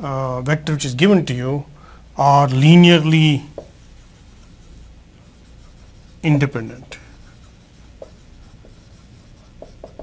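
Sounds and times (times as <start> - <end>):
marker writing on whiteboard: 2.6 - 10.0.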